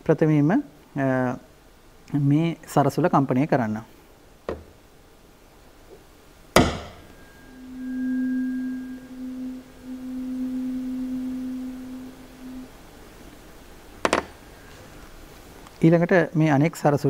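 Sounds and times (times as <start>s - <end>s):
tuning fork struck: 6.6s - 13.5s
tuning fork ringing tone: 6.6s - 15.2s.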